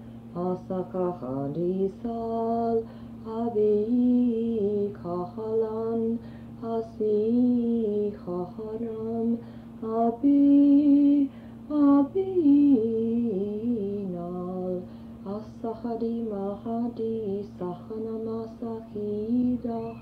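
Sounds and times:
steady low hum: 0.0s - 20.0s
woman singing wordless phrases: 0.3s - 20.0s.

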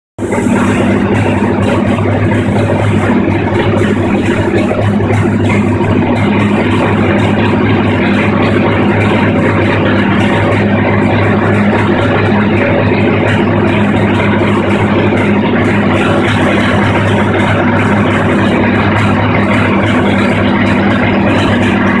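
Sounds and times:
engine idling: 0.2s - 22.0s.

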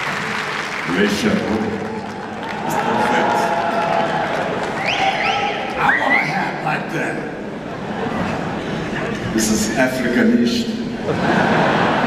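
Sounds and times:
hum of crowd voices: 0.0s - 12.0s
audience shouting: 2.4s - 6.1s.

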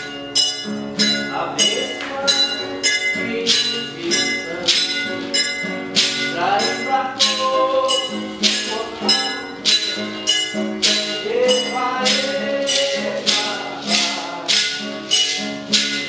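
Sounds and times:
plucked small guitar: 0.0s - 16.0s
person singing: 1.0s - 5.2s, 6.0s - 16.0s
gourd shakers shaken: 1.4s - 16.0s.

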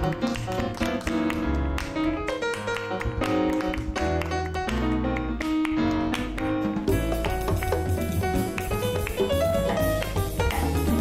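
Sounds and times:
bass: 0.0s - 11.0s
flamenco hand claps: 0.0s - 11.0s
piano: 0.0s - 11.0s
drums: 6.6s - 11.0s.

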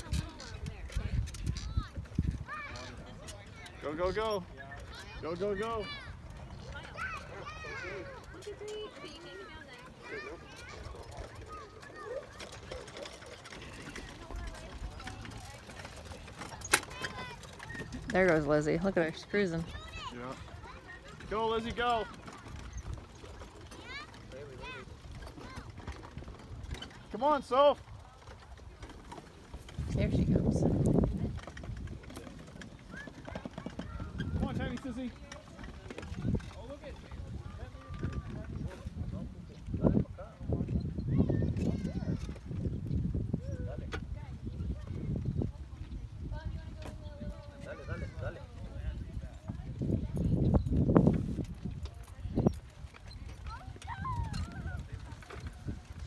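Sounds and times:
onlookers talking and calling: 0.0s - 56.0s.

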